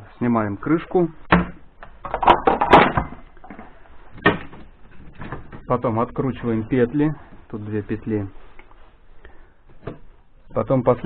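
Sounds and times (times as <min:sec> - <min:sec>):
plastic clattering and rattling: 0:01.4 - 0:05.7.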